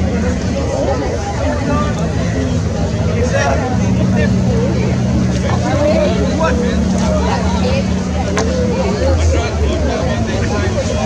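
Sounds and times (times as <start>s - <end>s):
indistinct voices: 0.0s - 11.0s
motorboat engine droning: 0.0s - 11.0s.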